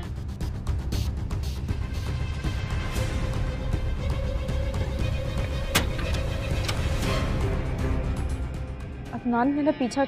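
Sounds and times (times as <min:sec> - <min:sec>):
background music with low drone: 0:00.0 - 0:10.0
metal door bolt clicking: 0:05.5 - 0:07.1.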